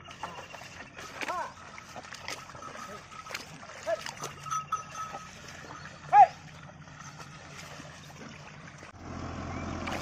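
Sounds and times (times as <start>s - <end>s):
cart wheels splashing through mud: 0.0s - 10.0s
hooves splashing through mud: 0.0s - 10.0s.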